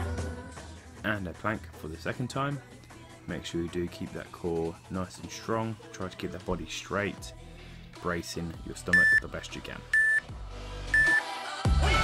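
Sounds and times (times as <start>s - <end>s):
quiet background music: 0.0s - 12.0s
electronic timer beeps: 8.9s - 9.2s, 9.9s - 10.2s, 10.9s - 11.2s.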